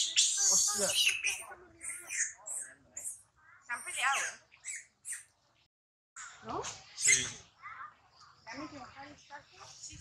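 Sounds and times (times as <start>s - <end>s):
monkeys squealing: 0.0s - 5.2s, 7.0s - 7.4s.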